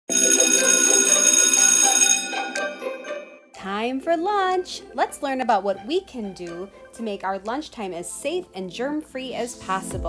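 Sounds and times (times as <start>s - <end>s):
bell ringing: 0.1s - 3.6s.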